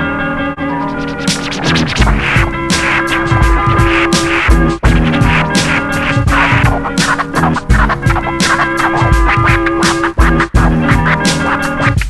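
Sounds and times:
instrumental hip-hop beat: 0.6s - 12.0s.

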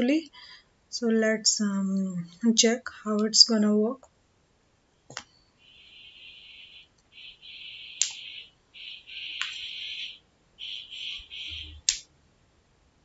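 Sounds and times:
computer mouse clicks: 5.1s - 5.3s, 8.0s - 8.3s, 9.4s - 9.7s, 11.8s - 12.1s.

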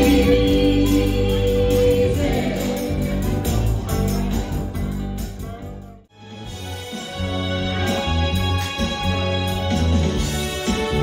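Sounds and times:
woman singing: 0.0s - 3.2s
live band playing: 0.0s - 11.0s.

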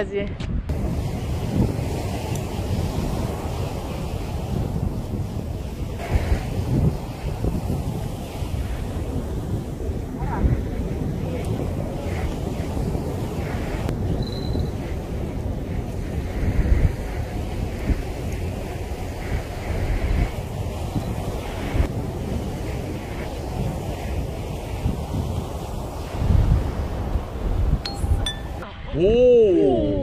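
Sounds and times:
wind blowing across microphone: 0.0s - 30.0s
sea waves washing: 0.7s - 28.7s.

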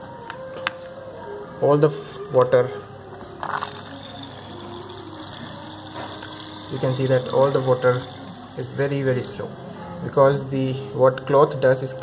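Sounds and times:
submerged pump running: 3.4s - 9.7s
water trickling from cloth: 3.6s - 9.4s.

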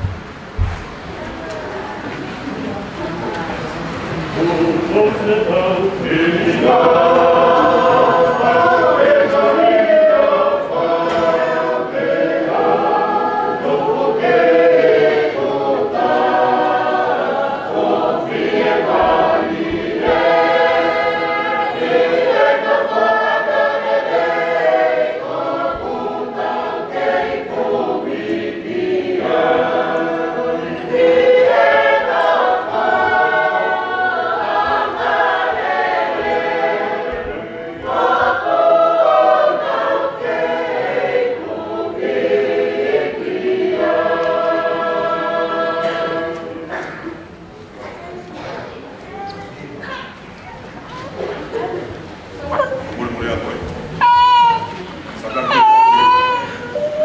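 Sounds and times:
congregation singing a hymn: 0.0s - 48.9s.

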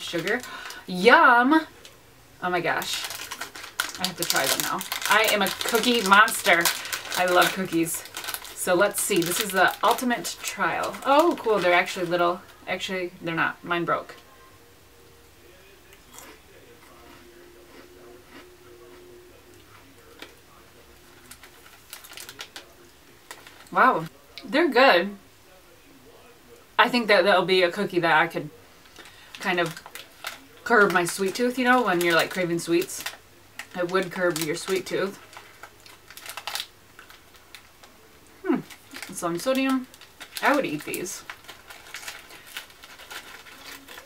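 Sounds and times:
snack packet crinkling: 0.0s - 0.9s, 2.7s - 12.6s, 21.0s - 24.1s, 28.8s - 44.0s
crunching of crisp cookie: 2.9s - 12.2s, 15.9s - 19.0s, 21.1s - 24.4s, 28.9s - 44.0s.

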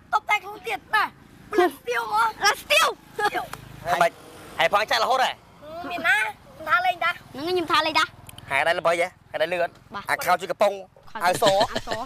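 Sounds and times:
people talking: 10.2s - 12.0s.

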